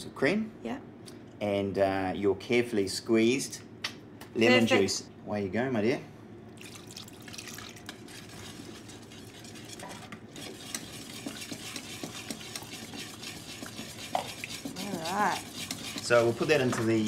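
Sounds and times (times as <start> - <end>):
whisk scraping metal bowl: 7.9 - 17.0.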